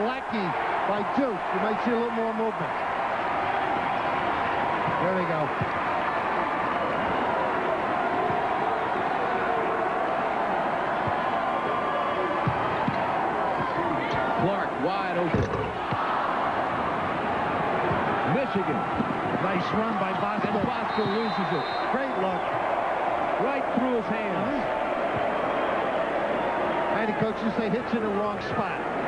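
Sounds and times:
crowd din of voices: 0:00.0 - 0:29.0
basketball bounces: 0:04.8 - 0:05.9, 0:11.0 - 0:11.3, 0:12.4 - 0:14.2, 0:15.3 - 0:16.1.

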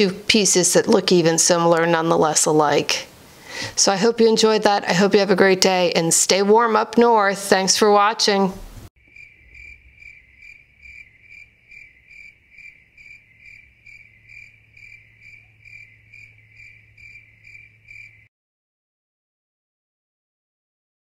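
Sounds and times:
cricket chirping: 0:09.0 - 0:18.3.

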